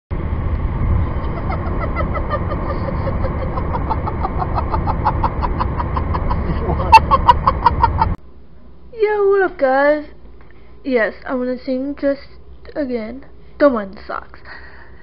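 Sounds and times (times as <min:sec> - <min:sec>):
vehicle rumble: 0:00.1 - 0:09.9.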